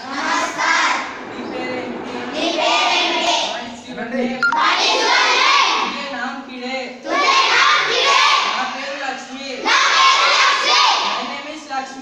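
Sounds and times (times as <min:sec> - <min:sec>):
children reciting in chorus: 0:00.0 - 0:11.4.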